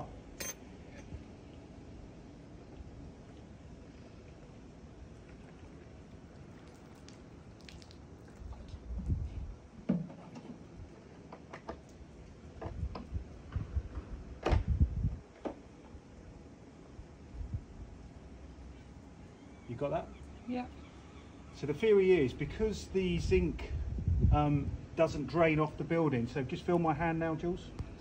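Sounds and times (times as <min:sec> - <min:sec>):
faint steady background noise: 0:00.0 - 0:28.0.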